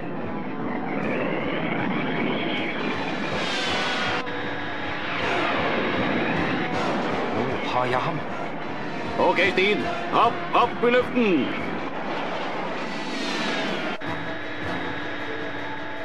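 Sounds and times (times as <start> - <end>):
cartoon jet engine sweeping: 0.0 - 16.0.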